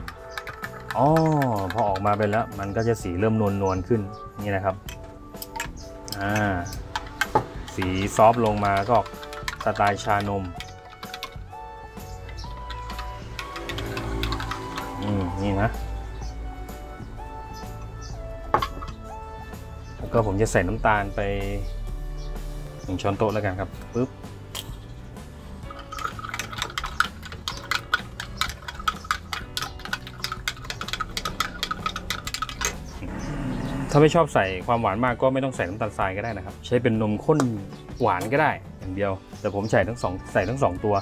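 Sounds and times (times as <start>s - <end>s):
background music: 0.0s - 41.0s
spoon clinking against glass: 25.7s - 32.8s.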